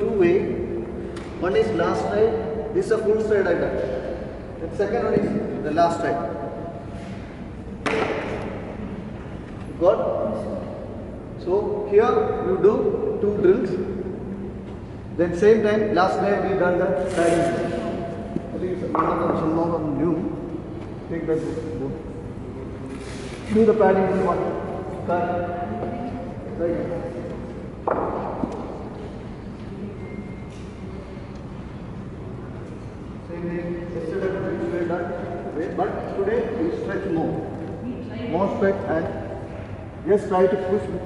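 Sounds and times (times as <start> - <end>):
cricket bat striking ball: 7.8 - 8.5
sharp echoing knock: 7.8 - 8.7, 27.8 - 28.8.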